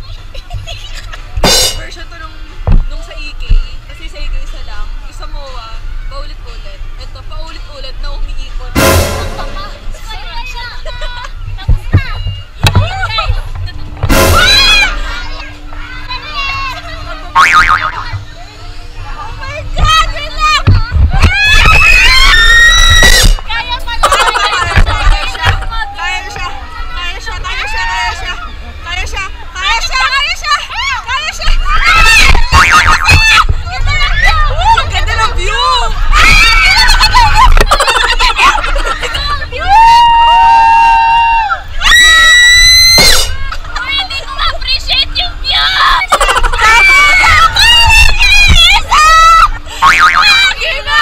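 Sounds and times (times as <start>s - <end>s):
wind rumble on microphone: 19.0s - 23.8s
women shrieking and laughing: 21.2s - 26.4s, 29.6s - 51.0s.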